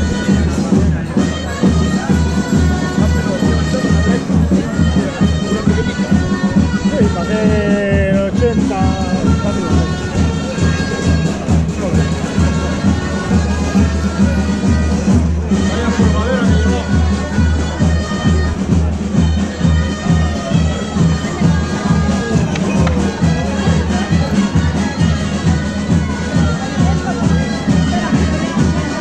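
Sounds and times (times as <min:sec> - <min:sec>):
bagpipes playing folk music: 0:00.0 - 0:29.0
crowd chatter: 0:00.0 - 0:29.0.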